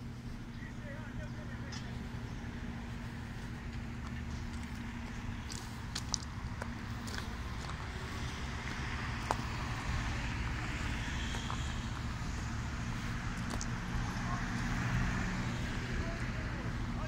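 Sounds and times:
cars driving past: 0:00.0 - 0:17.0
low engine rumble: 0:00.0 - 0:17.0.

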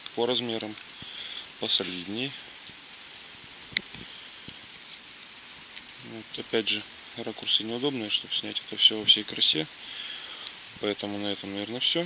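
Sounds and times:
rain hissing: 0:00.0 - 0:12.0
faint tick: 0:10.4 - 0:10.6.

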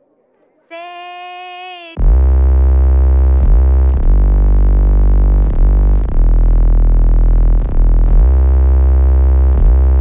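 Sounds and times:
techno synthesizer with deep bass: 0:02.0 - 0:10.0.

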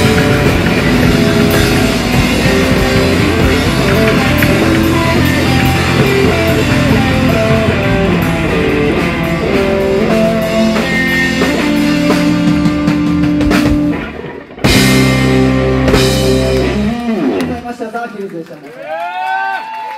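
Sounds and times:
live rock band playing: 0:00.0 - 0:18.0.

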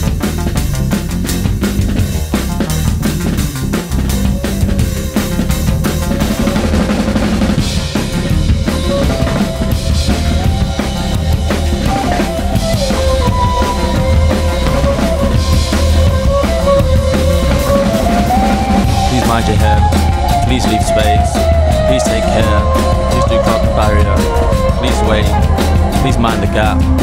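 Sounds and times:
drum kit beat: 0:00.0 - 0:27.0
sliding lead melody: 0:00.0 - 0:27.0.

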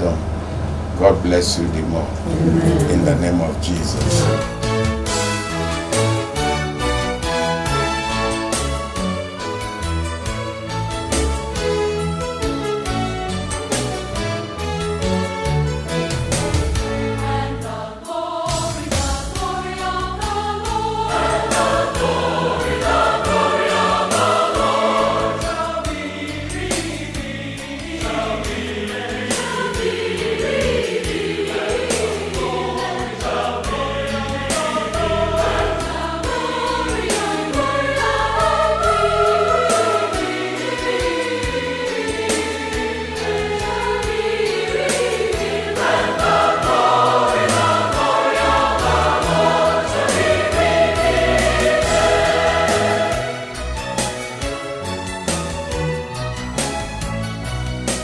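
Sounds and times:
choir singing gospel music: 0:00.0 - 0:58.0.

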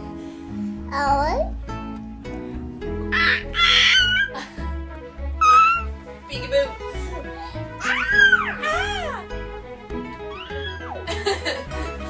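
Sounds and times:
background music: 0:00.0 - 0:12.0
toddler squealing: 0:03.1 - 0:04.4, 0:05.4 - 0:05.9, 0:07.8 - 0:09.2, 0:10.3 - 0:11.0.

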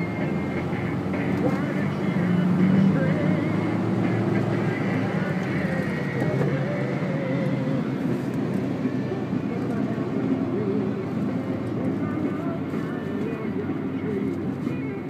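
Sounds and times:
car road and engine noise: 0:00.0 - 0:15.0.

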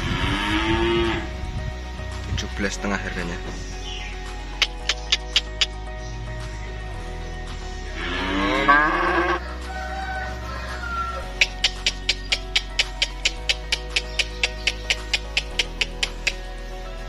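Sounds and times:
background music with ticking beat: 0:00.0 - 0:17.0
calf mooing: 0:08.0 - 0:09.4.

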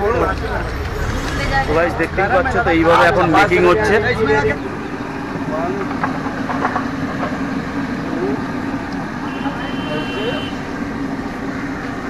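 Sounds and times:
street traffic: 0:00.0 - 0:12.0.

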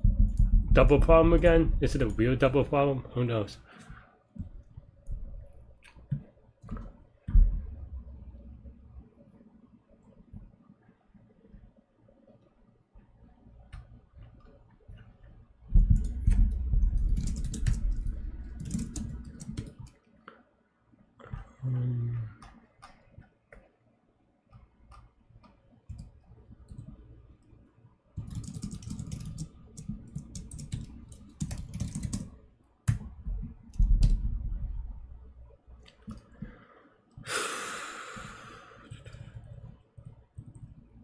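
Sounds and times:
low rumble: 0:00.0 - 0:02.4, 0:15.8 - 0:19.2
typing on computer keyboard: 0:15.7 - 0:20.0, 0:28.2 - 0:33.1, 0:38.8 - 0:40.8
breathy sigh: 0:21.2 - 0:22.4, 0:36.4 - 0:38.9.

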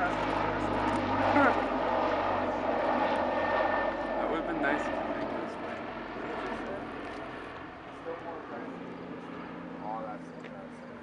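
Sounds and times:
turboprop engines droning: 0:00.0 - 0:11.0.

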